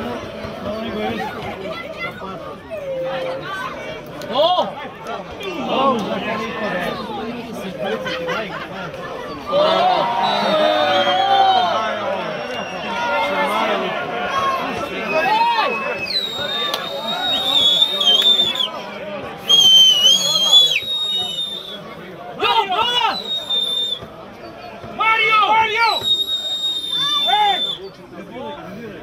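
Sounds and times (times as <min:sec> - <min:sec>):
shrill whistles: 0:10.2 - 0:11.4, 0:15.0 - 0:18.8, 0:19.4 - 0:21.8, 0:22.9 - 0:24.7, 0:25.8 - 0:28.0.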